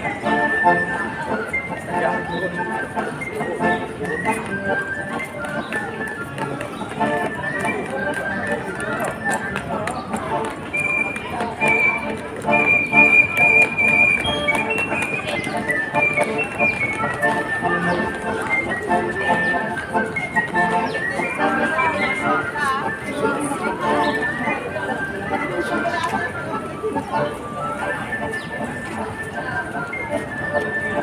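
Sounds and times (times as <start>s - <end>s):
accordion playing a melody: 0.0s - 31.0s.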